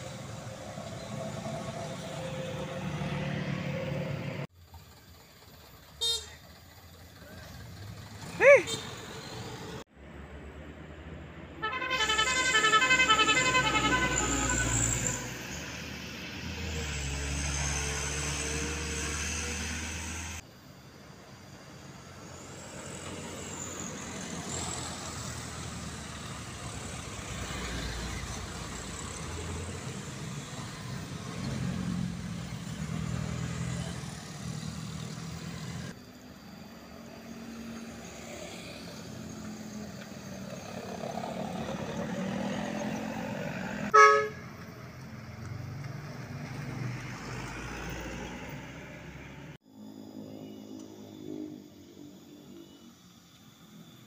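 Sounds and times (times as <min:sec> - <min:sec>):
motorcycles passing: 0:00.0 - 0:04.5, 0:05.2 - 0:20.4, 0:22.5 - 0:36.0, 0:36.6 - 0:52.6
heavy trucks passing: 0:00.0 - 0:20.4, 0:21.5 - 0:50.2
vehicle horn blast: 0:06.0 - 0:06.5, 0:11.6 - 0:15.4, 0:43.9 - 0:44.6.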